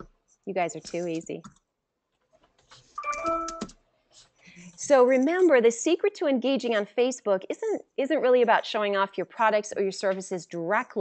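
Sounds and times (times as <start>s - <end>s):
two-note electronic chime: 3.0s - 3.6s.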